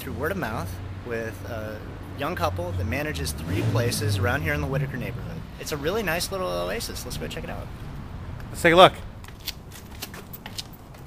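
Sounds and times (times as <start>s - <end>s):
low steady rumble: 0.0s - 9.3s
footsteps scuffing on pavement: 9.2s - 11.0s.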